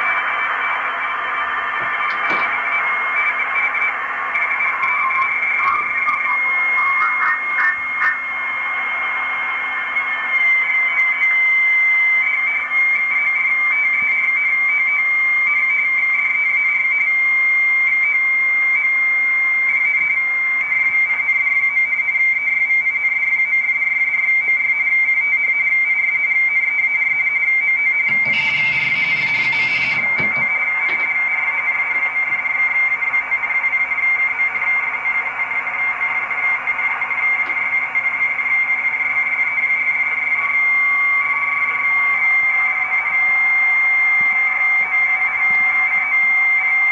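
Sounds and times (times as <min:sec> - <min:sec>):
radio band hiss: 0:00.0 - 0:10.2
radio data signal whistle: 0:00.0 - 0:46.9.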